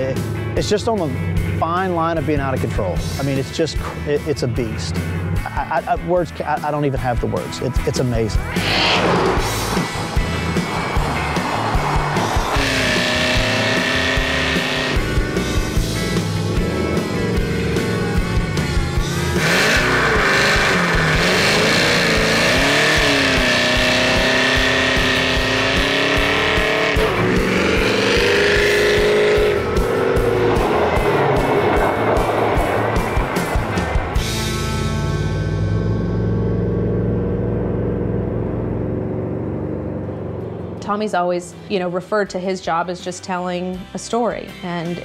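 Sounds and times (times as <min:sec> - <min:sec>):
music: 0:00.0 - 0:36.9, 0:40.0 - 0:45.0
supercharged engine revving: 0:08.4 - 0:41.8.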